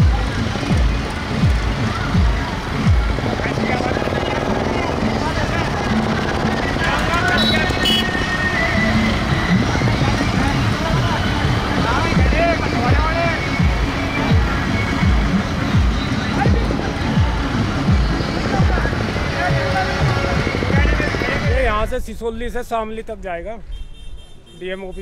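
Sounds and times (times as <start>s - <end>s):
music: 0.0s - 21.7s
voices: 0.0s - 23.6s
tractor engines rumbling: 0.0s - 23.8s.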